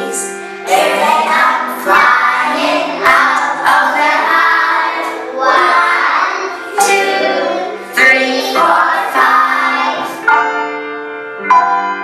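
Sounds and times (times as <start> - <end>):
young children singing in chorus: 0.0 - 10.3.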